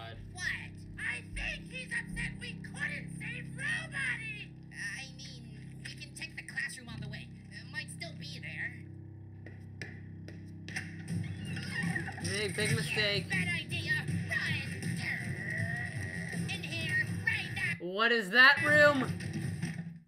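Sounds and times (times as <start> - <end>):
cartoon character dialogue: 0.0 - 5.6, 11.6 - 15.8, 16.4 - 19.1
background music: 0.0 - 20.0.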